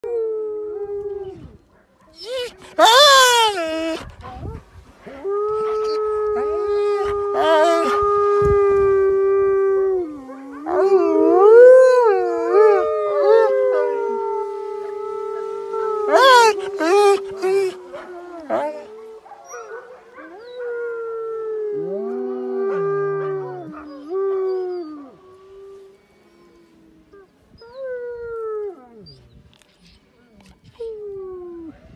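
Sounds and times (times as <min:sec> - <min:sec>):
wolf howling: 0:02.3 - 0:04.2, 0:05.2 - 0:19.6, 0:20.2 - 0:25.8
dog howling: 0:05.3 - 0:08.9, 0:10.0 - 0:19.7, 0:20.3 - 0:25.2.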